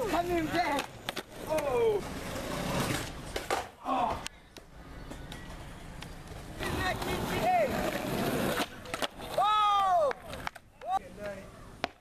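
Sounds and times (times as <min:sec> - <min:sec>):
skateboard clacking on concrete: 0:00.0 - 0:01.9, 0:03.3 - 0:12.0.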